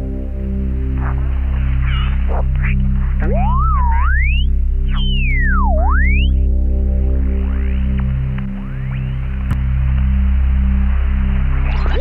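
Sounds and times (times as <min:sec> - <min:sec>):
pulsing low drone: 0:00.0 - 0:12.0
shortwave radio tuning noise: 0:11.5 - 0:12.0.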